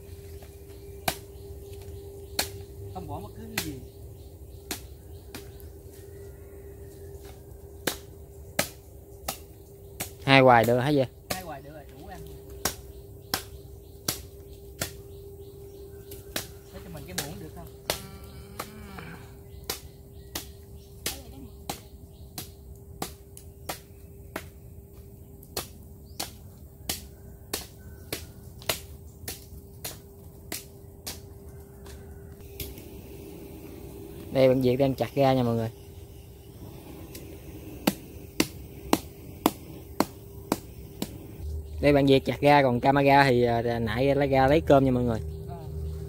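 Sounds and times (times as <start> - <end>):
machete chopping fruit: 7.8 - 11.6, 12.6 - 15.0, 16.2 - 24.6, 25.5 - 31.3.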